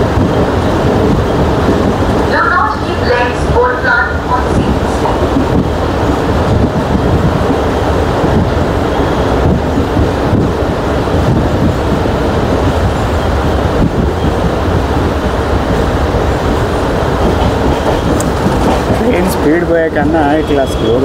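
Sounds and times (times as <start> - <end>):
train running noise: 0.0 - 21.0.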